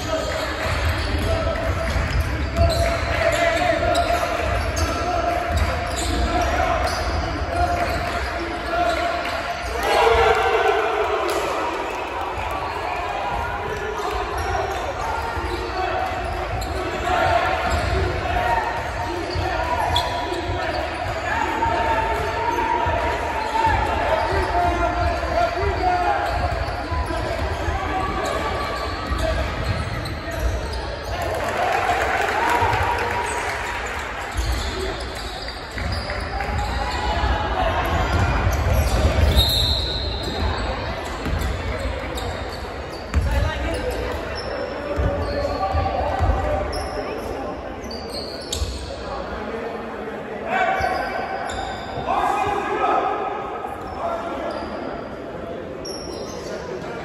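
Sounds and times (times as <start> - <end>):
spectators' voices: 0.0 - 57.0.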